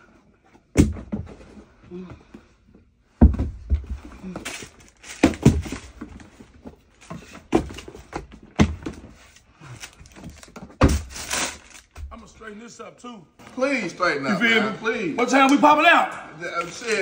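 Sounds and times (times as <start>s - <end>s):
shoe boxes knocking and thudding: 0.5s - 2.4s, 3.1s - 9.3s, 10.0s - 11.3s.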